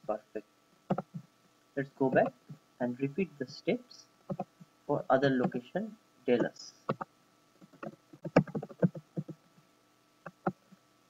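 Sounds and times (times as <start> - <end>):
computer keyboard typing: 0.9 - 1.2, 6.9 - 9.4.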